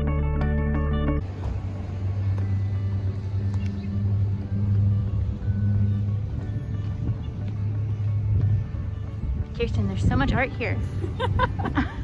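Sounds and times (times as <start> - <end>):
faint music: 1.1 - 12.0
low steady rumble: 1.2 - 12.0.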